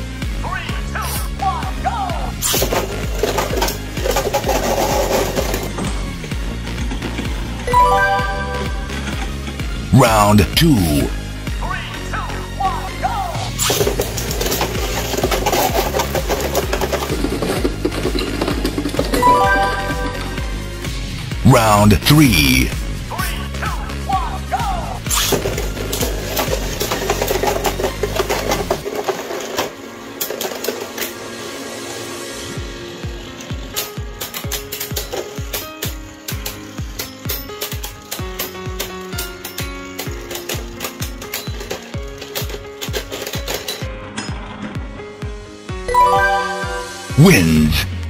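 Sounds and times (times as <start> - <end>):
background music with steady beat: 5.7 - 11.6, 19.1 - 25.2
short rising jingle: 7.7 - 9.4, 19.2 - 20.7, 45.9 - 47.2.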